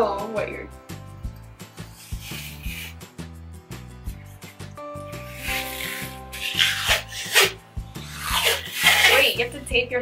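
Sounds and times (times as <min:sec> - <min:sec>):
background music with steady beat: 0:00.0 - 0:10.0
adhesive tape pulled off roll: 0:01.8 - 0:03.1, 0:04.4 - 0:09.4.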